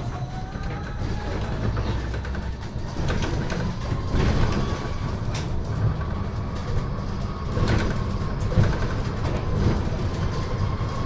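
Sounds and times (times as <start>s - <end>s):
bus drivetrain and road rumble: 0.0s - 11.0s.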